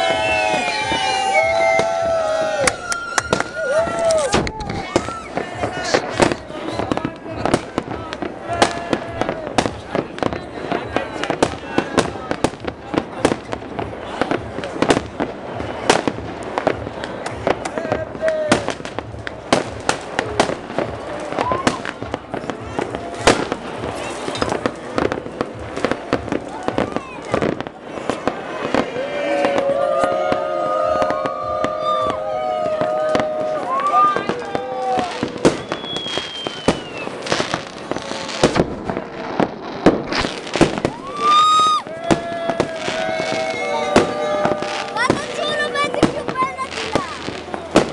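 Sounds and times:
fireworks and firecrackers banging: 0.0s - 47.9s.

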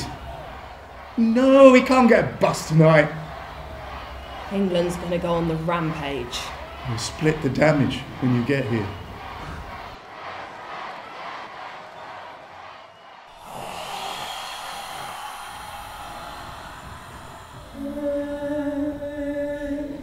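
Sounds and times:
voice holding low note: 13.3s - 19.8s.

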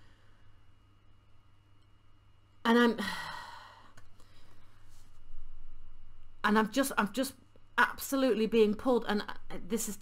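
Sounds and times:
woman sighing: 2.9s - 3.9s.

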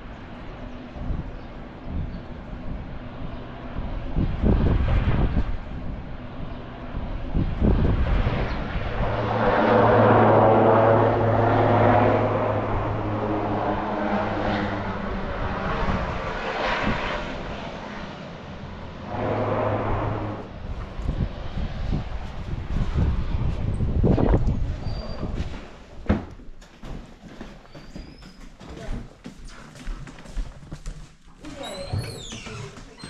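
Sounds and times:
propeller aircraft engines droning: 0.0s - 26.0s.

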